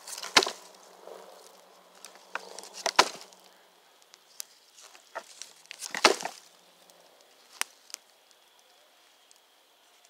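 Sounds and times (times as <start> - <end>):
loud pop of burning wood: 0.0 - 0.8, 2.0 - 4.2, 5.1 - 6.6
campfire embers crackling: 0.0 - 10.0.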